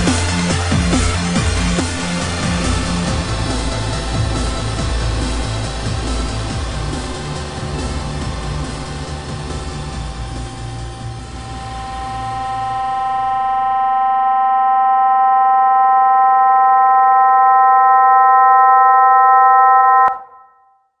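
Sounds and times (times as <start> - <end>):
techno bass and noisy texture: 0.0 - 14.5
held electronic chord: 0.0 - 20.8.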